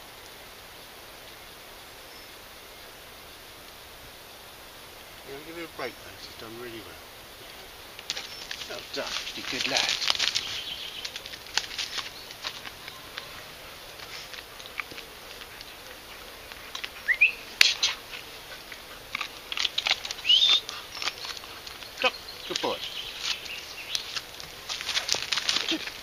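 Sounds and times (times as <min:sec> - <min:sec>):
birds chirping: 0:03.8 - 0:26.0.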